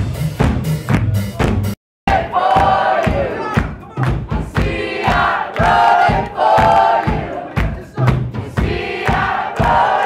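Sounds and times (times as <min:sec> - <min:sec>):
live band music with drums: 0:00.0 - 0:10.0.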